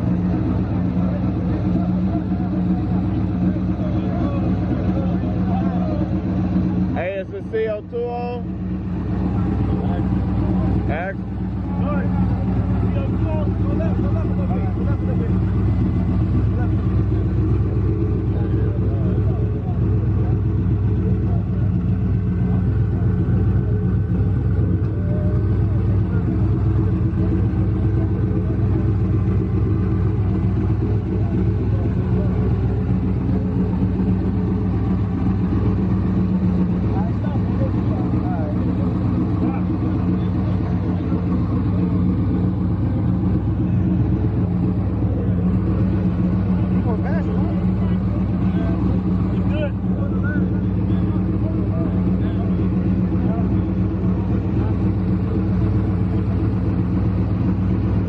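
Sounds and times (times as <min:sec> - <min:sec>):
car engine idling: 0:00.0 - 0:58.0.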